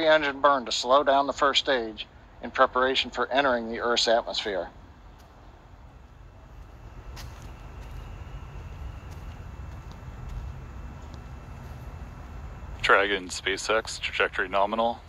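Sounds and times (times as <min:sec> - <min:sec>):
low night rumble: 0:00.0 - 0:15.0.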